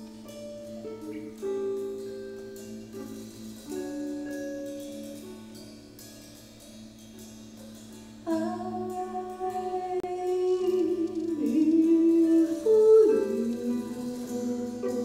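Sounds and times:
woman singing into microphone: 8.3 - 15.0.

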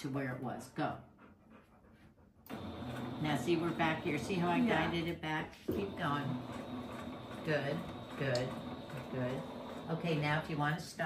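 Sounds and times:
electric sewing machine running: 2.5 - 5.1, 5.8 - 10.9.

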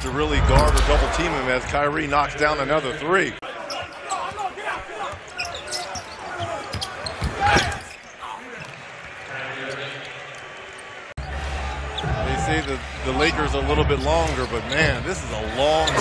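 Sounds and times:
crowd voices: 0.0 - 16.0.

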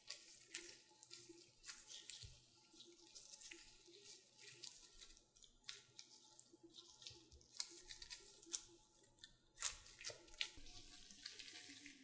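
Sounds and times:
plastic gloves rustling: 0.0 - 12.0
sticky rubbing of dough: 0.0 - 12.0.

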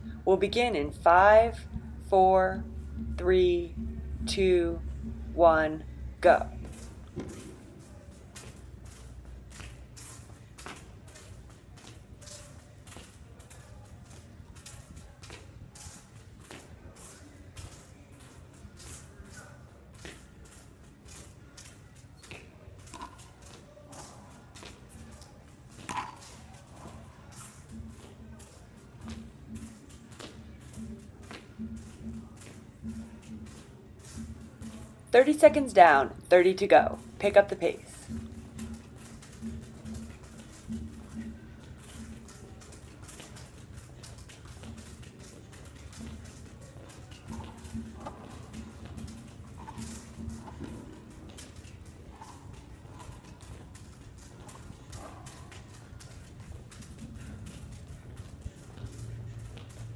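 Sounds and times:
shoes scuffing concrete: 6.5 - 17.8.

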